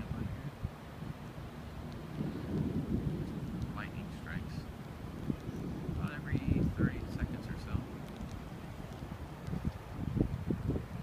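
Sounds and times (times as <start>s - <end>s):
distant thunder rumbling: 0.0s - 11.0s.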